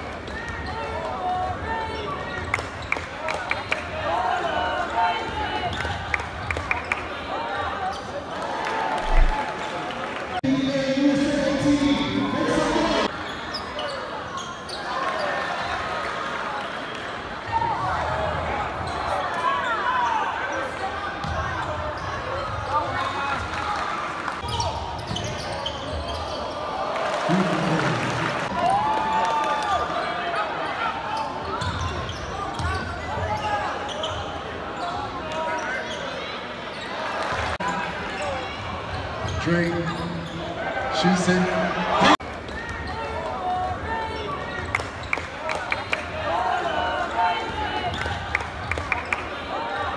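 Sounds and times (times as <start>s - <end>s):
crowd chatter echoing: 0.0s - 25.0s, 25.6s - 49.9s.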